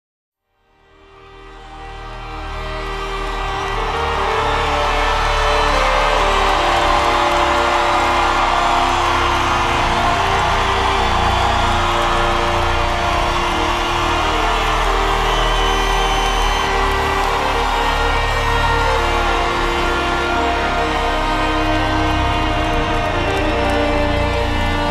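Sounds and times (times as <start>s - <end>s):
crowd cheering and whooping: 1.3s - 24.9s.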